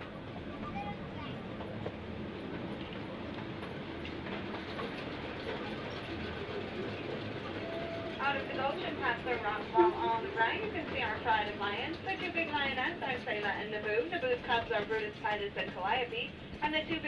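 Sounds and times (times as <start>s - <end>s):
train wheels rumbling on track: 0.0s - 17.0s.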